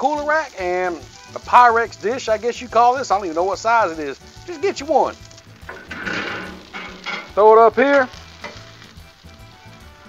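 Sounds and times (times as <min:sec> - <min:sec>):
noodles sizzling on a griddle: 0:00.0 - 0:10.0.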